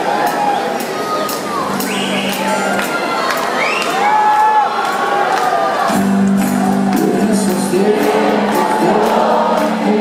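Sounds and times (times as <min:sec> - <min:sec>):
live rock band playing: 0:00.0 - 0:04.4, 0:05.8 - 0:10.0
audience cheering and whooping: 0:00.0 - 0:07.2.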